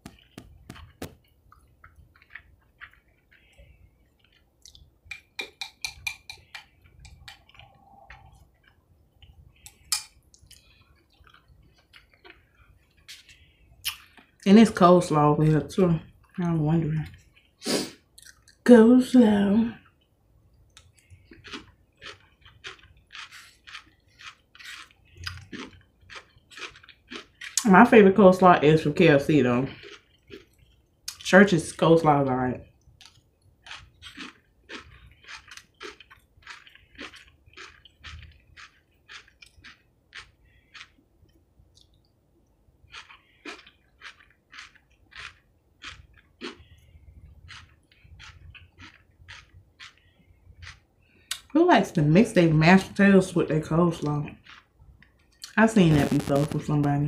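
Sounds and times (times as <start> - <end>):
person chewing food: 0.0 - 14.4, 15.8 - 18.6, 19.8 - 27.7, 29.6 - 31.3, 32.6 - 51.5, 54.0 - 56.6.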